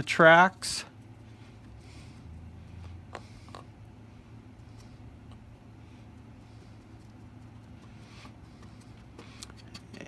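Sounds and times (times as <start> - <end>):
steady low hum: 0.0 - 10.0
brush tapping and scratching: 6.1 - 10.0.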